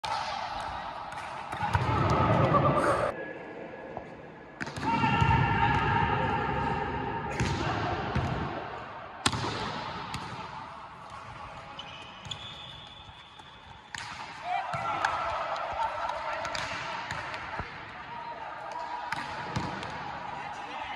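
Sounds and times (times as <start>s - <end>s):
players shouting: 0.0s - 3.2s, 4.6s - 8.9s, 14.2s - 20.9s
hands slapping volleyball: 13.4s - 17.7s, 19.1s - 20.0s.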